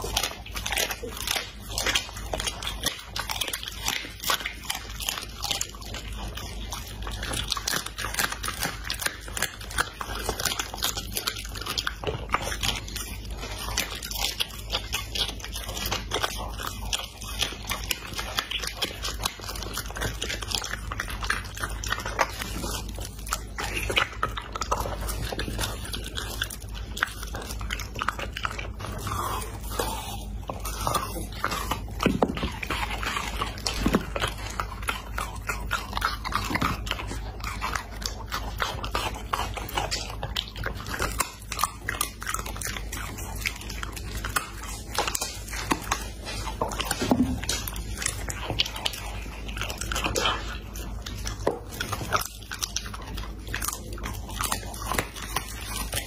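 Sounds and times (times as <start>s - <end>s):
dog chewing meat: 0.0s - 56.0s.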